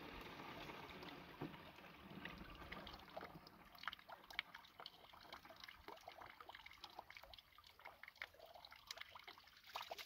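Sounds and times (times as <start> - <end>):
water trickling into plastic bottle: 0.6 - 10.0
small splashes and drips: 2.1 - 10.0.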